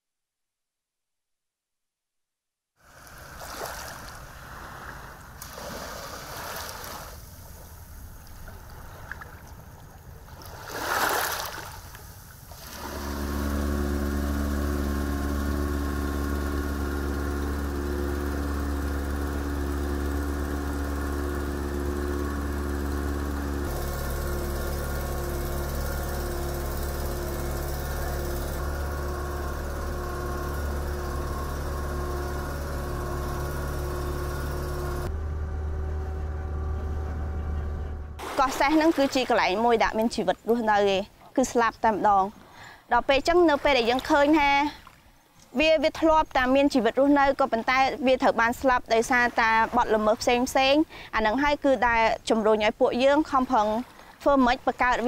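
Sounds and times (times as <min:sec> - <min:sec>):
boat engine droning: 0:03.0 - 0:10.5, 0:12.0 - 0:42.2, 0:45.6 - 0:55.0
waves washing over stones: 0:10.5 - 0:11.8.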